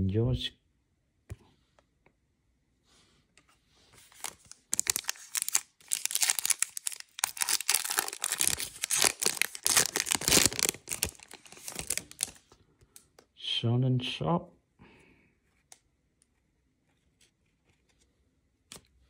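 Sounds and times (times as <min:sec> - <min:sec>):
foil wrapper tearing and crinkling: 0:04.1 - 0:12.5.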